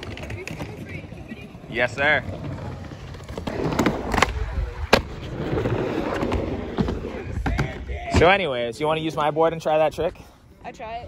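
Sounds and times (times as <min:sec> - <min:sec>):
skateboard wheels rumbling on wood: 0:00.0 - 0:08.3
skateboard knocking on ramp: 0:03.5 - 0:08.2.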